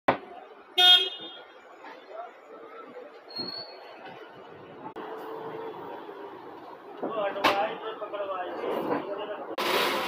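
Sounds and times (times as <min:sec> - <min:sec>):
street traffic hum: 0:00.1 - 0:10.0
vehicle horn honk: 0:00.8 - 0:01.4.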